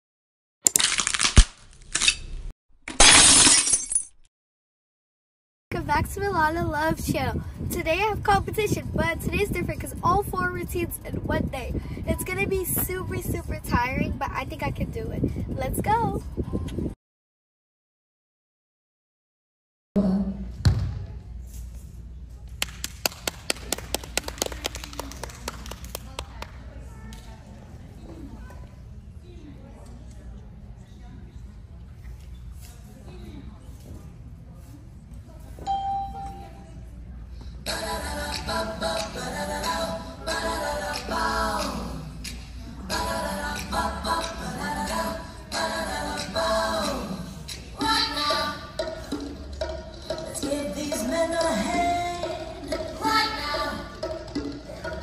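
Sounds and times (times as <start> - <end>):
glass shattering: 2.9 - 4.3
low voices in a large hall: 20.0 - 55.0
people clapping: 22.5 - 26.6.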